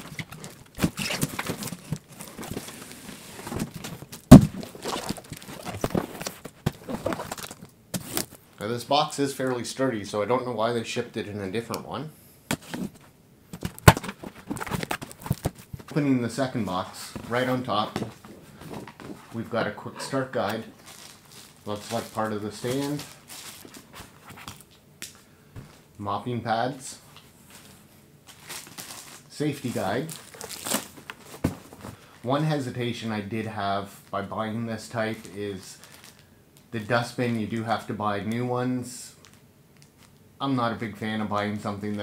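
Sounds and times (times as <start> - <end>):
crackling and rustling cardboard: 0.0 - 8.4, 13.6 - 24.7, 27.5 - 32.0
plastic packaging crinkling: 0.0 - 8.4, 20.4 - 24.8, 28.3 - 31.9, 35.2 - 36.3.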